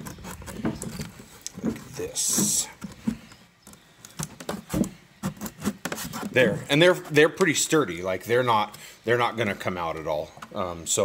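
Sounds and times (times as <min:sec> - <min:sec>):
wooden frames knocking and scraping: 0:00.0 - 0:07.8.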